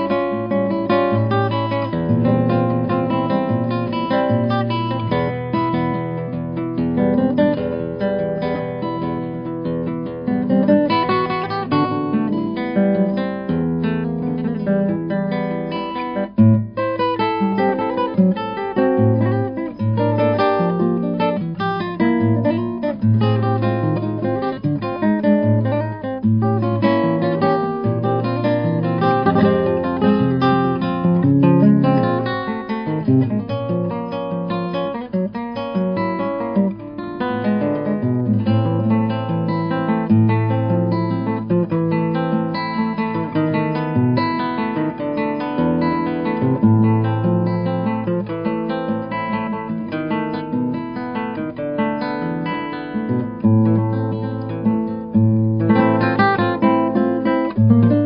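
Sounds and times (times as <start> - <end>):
solo classical guitar fingerpicked: 0.0 - 58.0.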